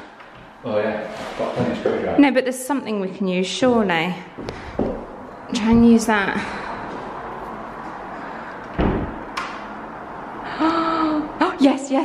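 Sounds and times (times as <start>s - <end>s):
dull thump on door: 8.8s - 9.2s.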